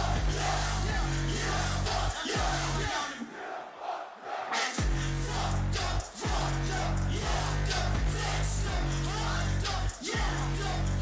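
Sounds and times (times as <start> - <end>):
heavy bass notes: 0.0 - 2.9, 4.8 - 11.0
hip-hop over sound system: 0.0 - 3.4, 4.6 - 11.0
large crowd: 0.0 - 11.0.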